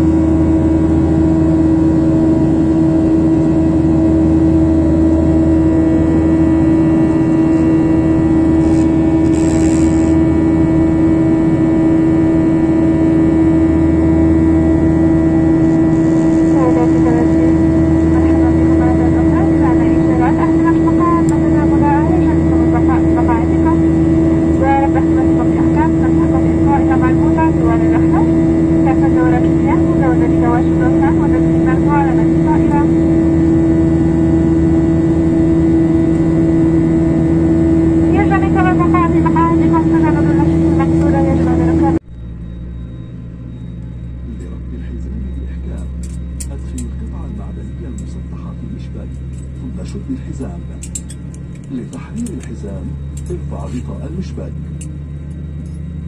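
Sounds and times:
jet airliner cabin drone: 0:00.0 - 0:56.0.

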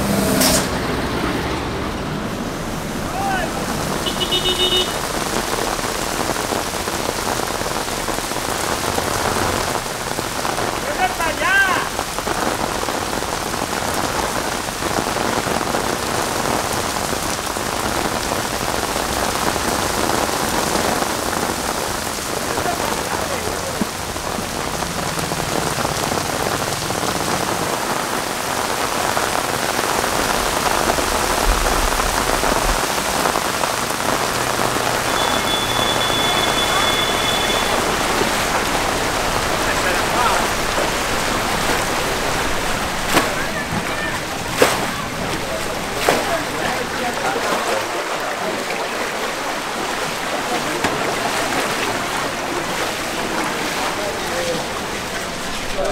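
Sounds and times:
heavy rain pouring: 0:00.0 - 0:55.9.

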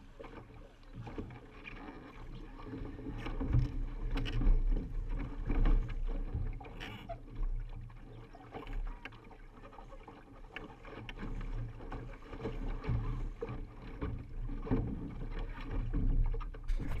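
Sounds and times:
water rushing along a hull: 0:00.0 - 0:17.0
steady low rumble: 0:16.7 - 0:17.0.

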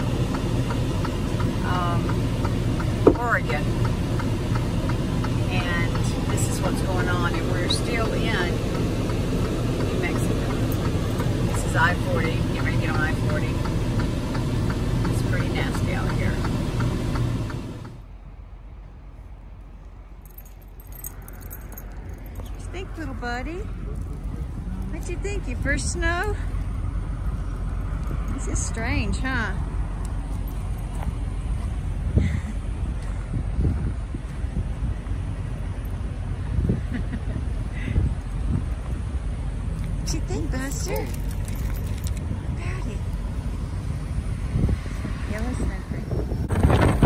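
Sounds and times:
road noise inside cab: 0:00.0 - 0:47.0
truck engine drone: 0:00.0 - 0:47.0.

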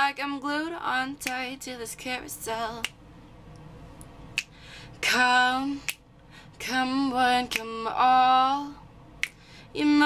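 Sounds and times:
finger snap: 0:01.2 - 0:01.5, 0:02.7 - 0:04.6, 0:05.8 - 0:06.1, 0:07.5 - 0:07.8, 0:09.2 - 0:09.4.

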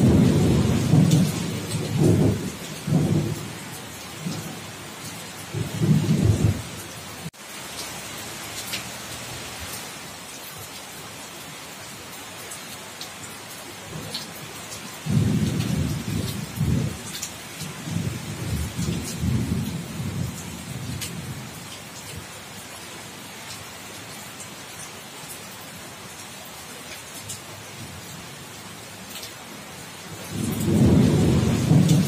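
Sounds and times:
thunder rumbling: 0:00.0 - 0:03.6, 0:05.5 - 0:06.8, 0:15.0 - 0:17.0, 0:17.6 - 0:21.4, 0:30.3 - 0:32.0
heavy rain on a corrugated roof: 0:00.0 - 0:32.0.

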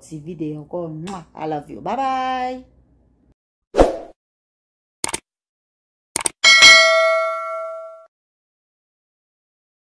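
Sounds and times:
bell ding: 0:06.4 - 0:08.1.

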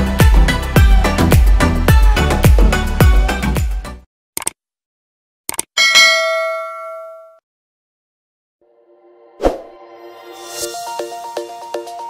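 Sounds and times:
bright bell ding: 0:05.8 - 0:07.4.

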